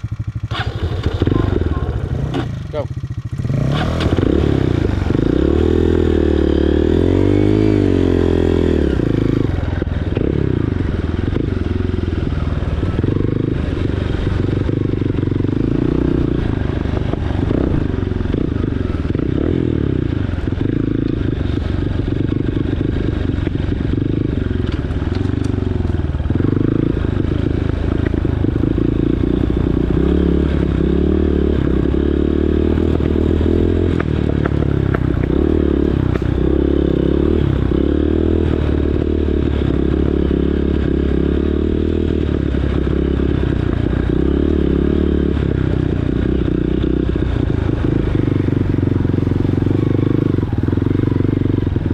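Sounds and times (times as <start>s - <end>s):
dirt bike engine revving: 0.0s - 51.9s.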